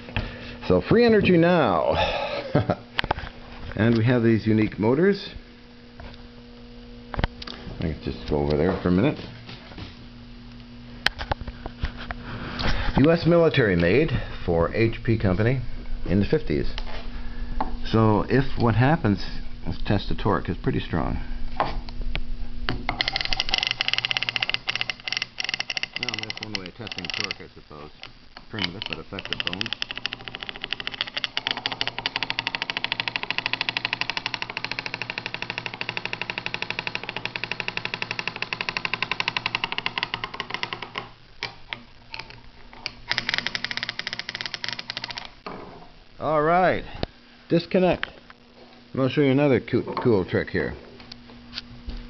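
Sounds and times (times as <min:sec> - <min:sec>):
electric motor rattling buzz: 0:22.8 - 0:45.5.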